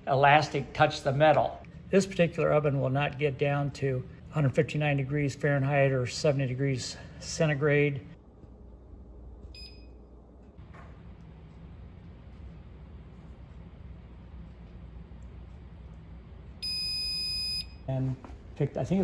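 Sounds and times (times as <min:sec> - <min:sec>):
low steady hum: 0:00.0 - 0:19.0
oven control panel beeping: 0:09.5 - 0:10.1, 0:16.6 - 0:18.2.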